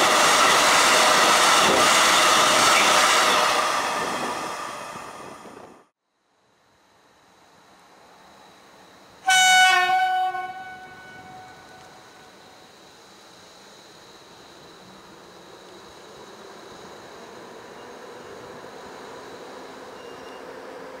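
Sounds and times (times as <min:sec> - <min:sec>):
low rumble of approaching train: 0:00.0 - 0:21.0
locomotive horn blast: 0:09.2 - 0:12.1.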